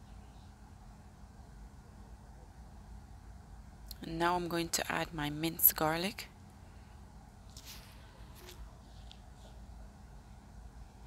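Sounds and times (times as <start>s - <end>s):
low steady room noise: 0.0s - 11.0s
plastic glove rustling: 7.5s - 9.2s.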